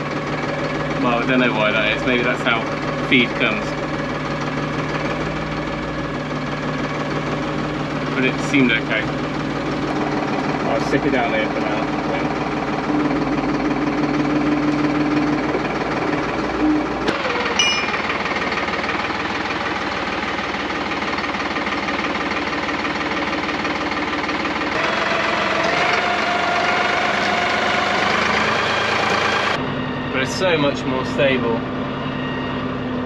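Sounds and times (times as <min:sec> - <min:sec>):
diesel tractor engine clattering: 0:00.0 - 0:31.9.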